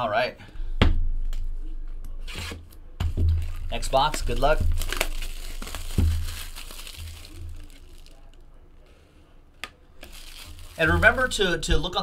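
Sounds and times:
plastic shrink wrap crinkling: 0:03.2 - 0:08.5, 0:10.0 - 0:11.7.

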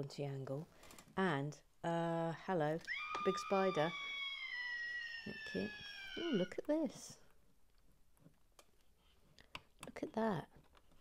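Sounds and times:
person speaking: 0:00.0 - 0:04.0, 0:05.3 - 0:07.3
high whistle-like tone sliding down: 0:02.9 - 0:06.6.

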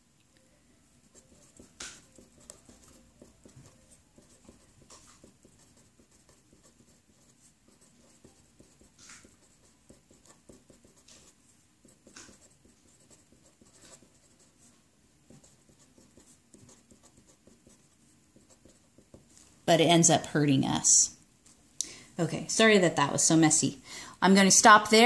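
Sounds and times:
felt-tip marker scratching on paper: 0:01.0 - 0:19.3.

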